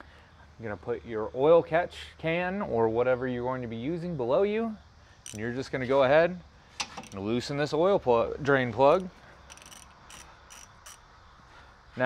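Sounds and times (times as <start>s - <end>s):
ratchet wrench clicking: 5.2s - 5.5s, 6.8s - 7.3s, 8.9s - 11.1s.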